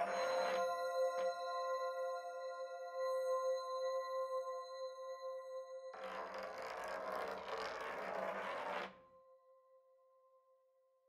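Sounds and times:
sustained bell-like drone: 0:00.0 - 0:06.7.

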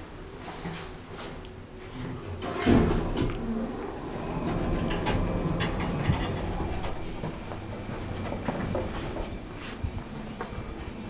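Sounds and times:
elevator doors sliding open: 0:02.4 - 0:09.7
footsteps: 0:04.5 - 0:11.0.

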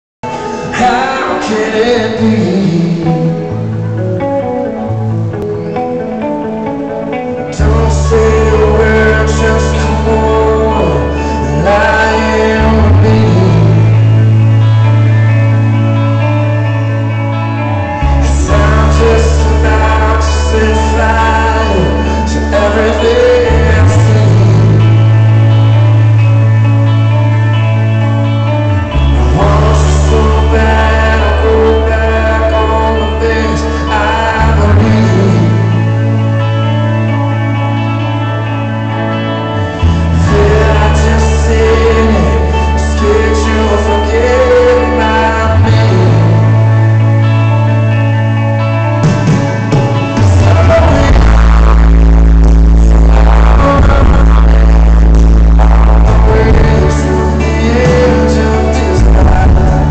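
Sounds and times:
person singing: 0:00.2 - 0:27.8, 0:28.5 - 0:59.9
electric guitar sustaining notes: 0:00.2 - 0:59.9
live band music: 0:00.2 - 0:59.9
drums: 0:45.6 - 0:59.9.

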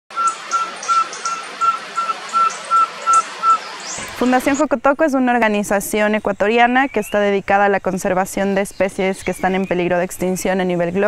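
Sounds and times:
birds chirping: 0:00.1 - 0:04.7, 0:05.4 - 0:11.0
owl whistled toots: 0:00.2 - 0:04.1.

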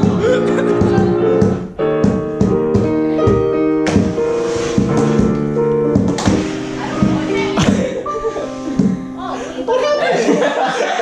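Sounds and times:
digital piano chords: 0:00.0 - 0:11.0.

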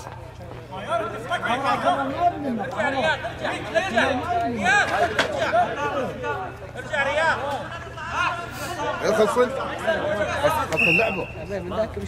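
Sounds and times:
men chattering: 0:00.0 - 0:12.0.

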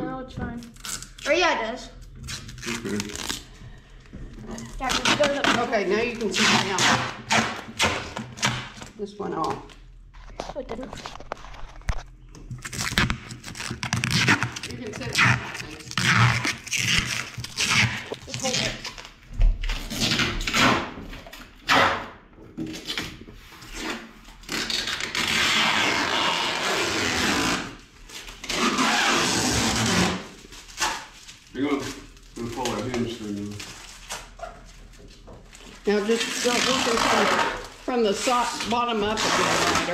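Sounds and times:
plastic wrap peeling and crinkling: 0:00.5 - 0:21.6, 0:22.7 - 0:39.9.

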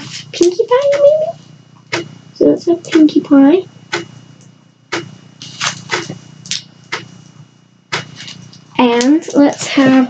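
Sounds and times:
paper crinkling: 0:05.4 - 0:06.2, 0:08.0 - 0:08.7.

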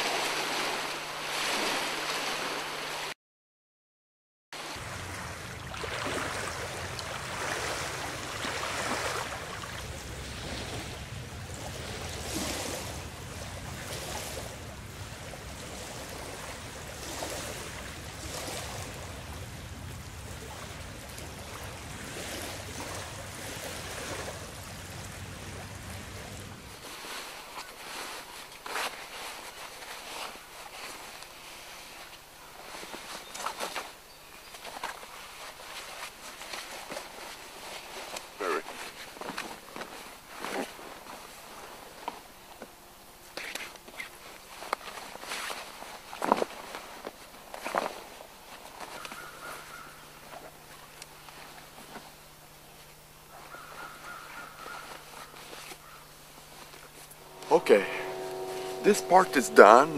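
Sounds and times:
small waves lapping: 0:00.0 - 0:03.2, 0:04.6 - 0:59.9
low wind rumble: 0:04.6 - 0:26.8.

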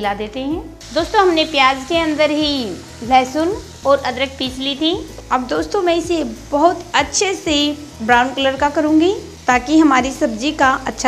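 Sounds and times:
onions sizzling in a pan: 0:00.0 - 0:11.0.

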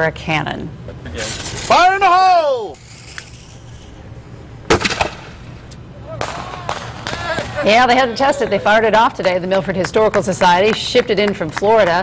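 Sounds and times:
cannon blast: 0:04.7 - 0:05.5.

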